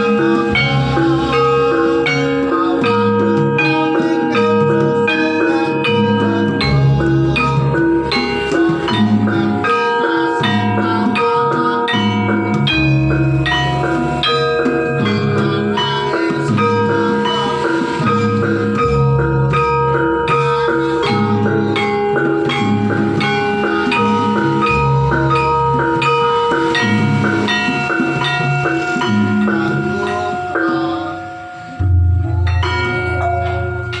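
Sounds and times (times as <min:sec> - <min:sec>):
gamelan melody: 0:00.0 - 0:34.0
deep low gong stroke: 0:31.8 - 0:34.0.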